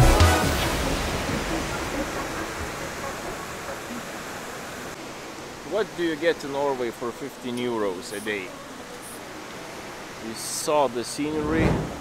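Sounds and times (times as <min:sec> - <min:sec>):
river water rushing through rapids: 0:00.0 - 0:12.0.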